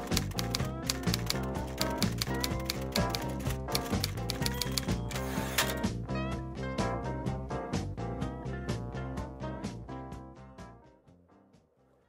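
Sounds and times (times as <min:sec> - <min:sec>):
typewriter keys clacking: 0:00.0 - 0:05.8
theme music: 0:00.0 - 0:05.9.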